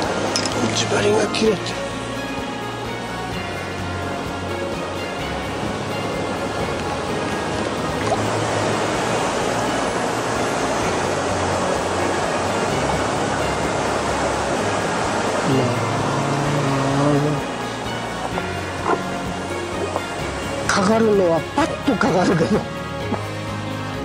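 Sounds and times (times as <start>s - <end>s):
river rapids over rocks: 0.0s - 21.9s
background music low notes: 0.0s - 24.0s.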